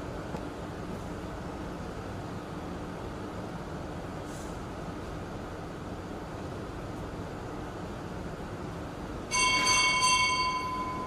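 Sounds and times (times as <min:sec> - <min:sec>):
bell ringing: 0:09.3 - 0:11.0.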